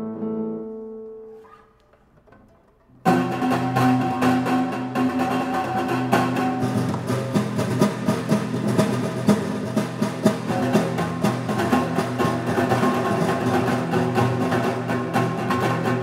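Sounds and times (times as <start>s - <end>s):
classical guitar duet: 0.0s - 16.0s.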